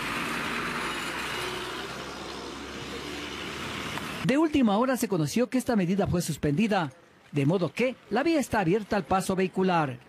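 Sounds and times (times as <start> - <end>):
road and street noise: 0.0 - 10.0
truck engines rumbling: 0.0 - 10.0.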